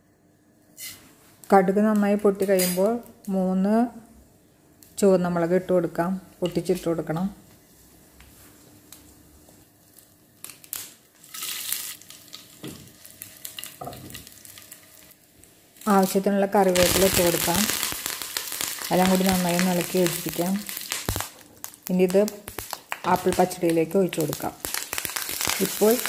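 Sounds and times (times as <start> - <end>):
hot oil sizzling: 10.7 - 26.0.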